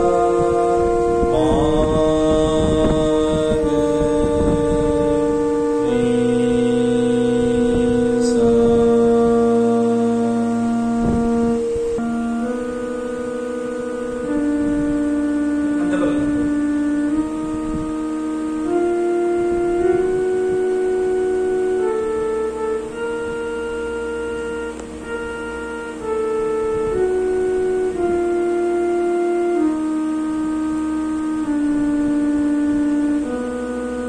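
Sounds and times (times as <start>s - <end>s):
electronic keyboard held notes: 0.0s - 34.0s.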